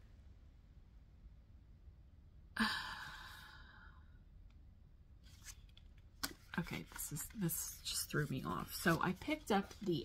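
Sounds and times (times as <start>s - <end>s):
woman sighing: 2.6s - 4.1s.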